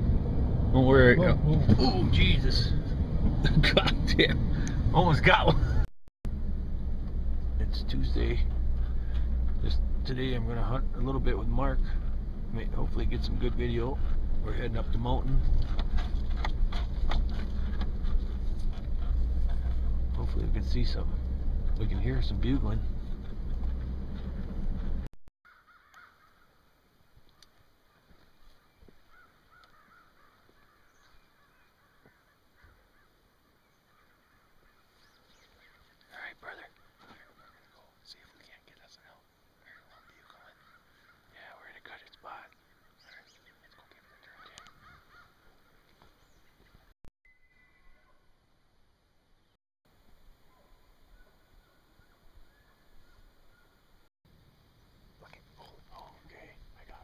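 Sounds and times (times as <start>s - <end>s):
elk bugling: 8.2s - 26.6s, 42.5s - 45.8s.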